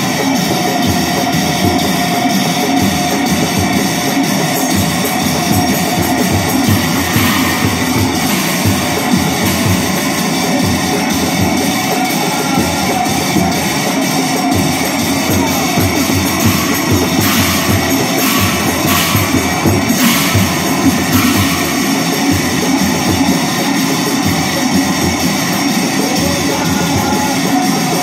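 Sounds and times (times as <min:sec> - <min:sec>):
brass hand cymbals clashing: 0:00.0 - 0:28.0
large drums beaten fast: 0:00.0 - 0:28.0.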